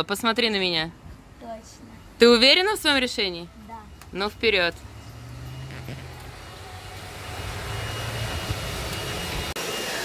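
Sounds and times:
low engine rumble: 3.1 - 9.5.

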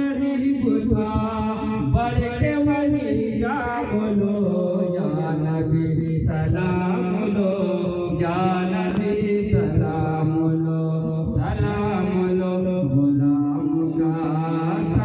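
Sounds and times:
man chanting over loudspeaker: 0.0 - 15.0.

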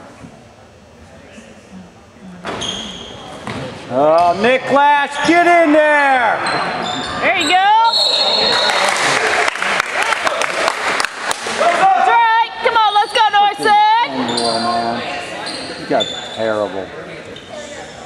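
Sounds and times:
crowd yelling: 5.0 - 14.1
referee's whistle: 6.9 - 8.9.

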